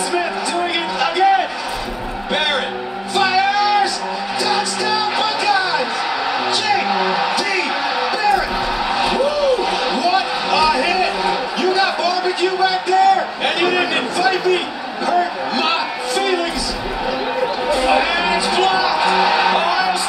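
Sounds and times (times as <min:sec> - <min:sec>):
excited shouted sports commentary: 0:00.0 - 0:01.7, 0:02.3 - 0:20.0
music with a steady beat: 0:00.0 - 0:11.6.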